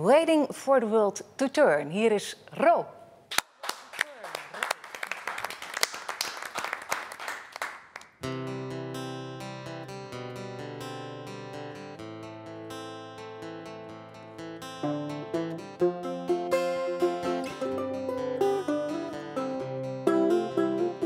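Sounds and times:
acoustic guitar playing: 8.2 - 21.0
resonator guitar playing: 8.2 - 21.0.

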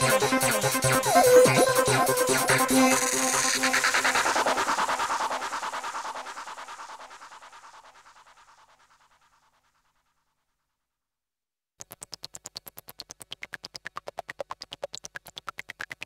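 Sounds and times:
electronic psytrance music: 0.0 - 7.3.

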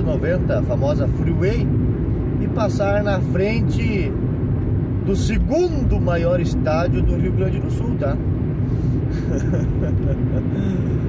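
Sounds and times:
road and engine noise in cab: 0.0 - 11.0.

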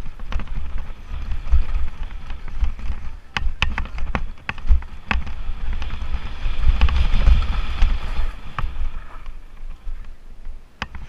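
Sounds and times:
bike knocks and rattles: 0.0 - 10.2, 10.8 - 11.0
tyres rolling on gravel: 0.0 - 10.6
wind buffeting microphone: 0.0 - 11.0.

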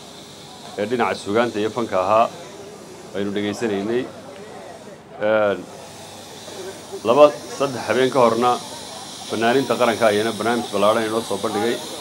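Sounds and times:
man speaking into a microphone: 9.4 - 11.9.

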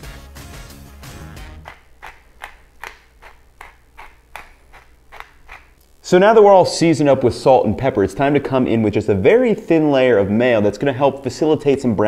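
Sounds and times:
pepper mill grinding: 1.6 - 5.8.

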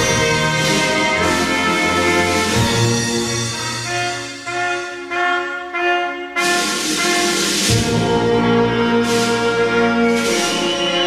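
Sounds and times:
wind band playing brass chords: 0.0 - 11.0.

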